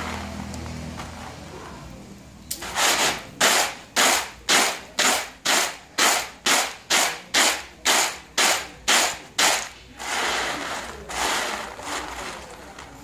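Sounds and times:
beans rattling in woven basket: 0:09.4 - 0:13.0.

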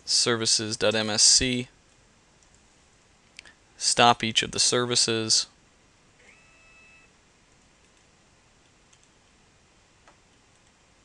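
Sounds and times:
faint room hiss: 0:00.0 - 0:11.0
computer mouse clicks: 0:07.8 - 0:09.2.

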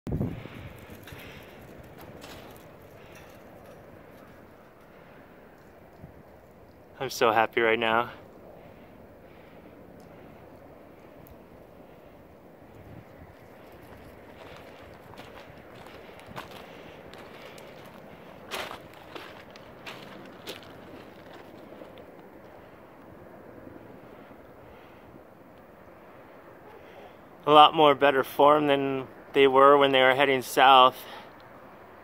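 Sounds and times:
distant helicopter rotors: 0:00.1 - 0:32.0.

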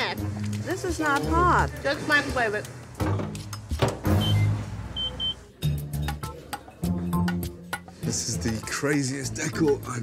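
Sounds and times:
background music: 0:00.0 - 0:10.0
microwave keypad beeps: 0:04.1 - 0:05.4.

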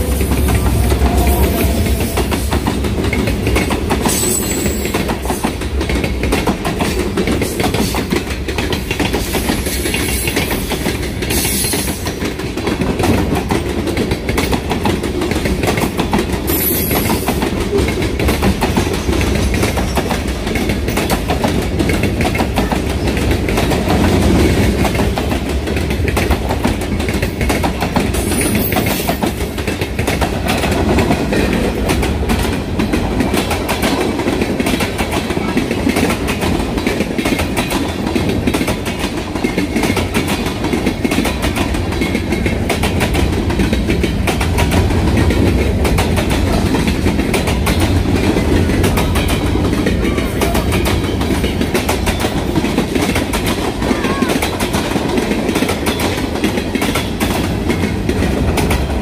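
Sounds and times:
freight train rumbling past: 0:00.0 - 0:59.0.

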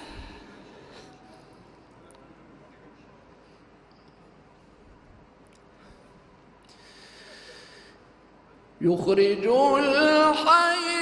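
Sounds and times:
person drawing deep breath: 0:00.0 - 0:01.6, 0:05.8 - 0:08.0.

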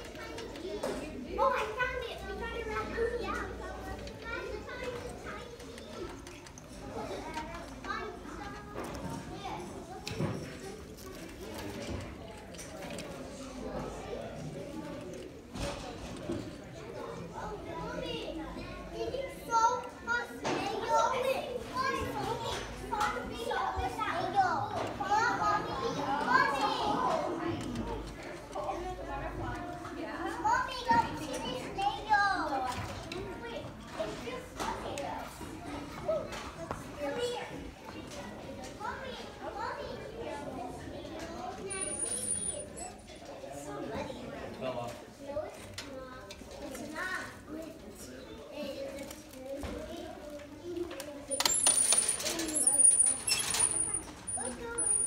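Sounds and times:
children chattering: 0:00.0 - 0:55.0
wheel squeaking: 0:41.7 - 0:42.8, 0:51.3 - 0:55.0.

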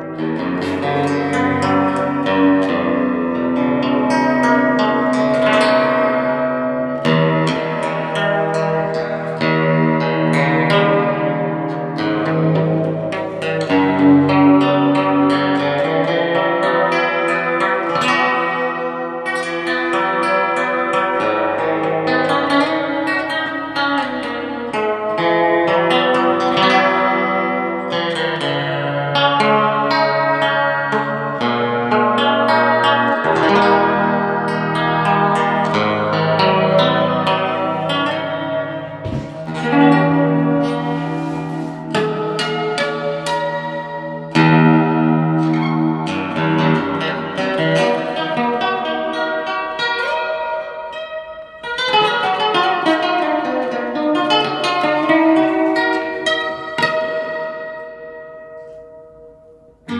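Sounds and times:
fingerpicked nylon-string guitar: 0:00.0 - 0:59.9.

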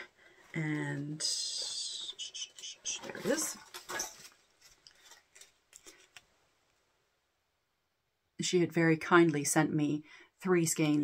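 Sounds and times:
yarn and paper label rustling: 0:00.3 - 0:06.7.

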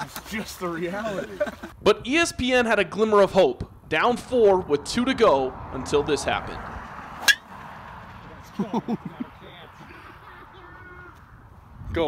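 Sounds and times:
golf club striking ball: 0:07.2 - 0:07.5
voices: 0:08.1 - 0:12.0.

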